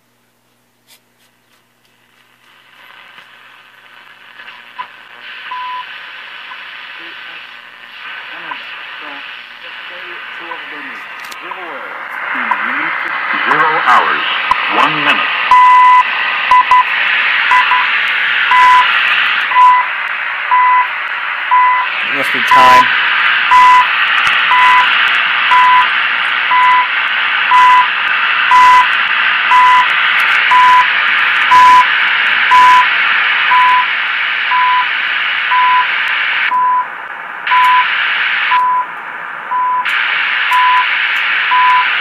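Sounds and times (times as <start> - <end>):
radio static hiss: 0.8 - 42.0
wavering radio tuning whistles: 4.3 - 36.9, 37.5 - 38.9, 39.5 - 42.0
time signal beeps: 5.5 - 5.9, 15.5 - 16.9, 17.5 - 17.9, 18.5 - 18.9, 19.5 - 19.9, 20.5 - 20.9, 21.5 - 21.9, 23.5 - 23.9, 24.5 - 24.9, 25.5 - 25.9, 26.5 - 26.9, 27.5 - 27.9, 28.5 - 28.9, 29.5 - 29.9, 30.5 - 30.9, 31.5 - 31.9, 32.5 - 32.9, 33.5 - 33.9, 34.5 - 34.9, 35.5 - 35.9, 36.5 - 36.9, 37.5 - 37.9, 38.5 - 38.9, 39.5 - 39.9, 40.5 - 40.9, 41.5 - 41.9.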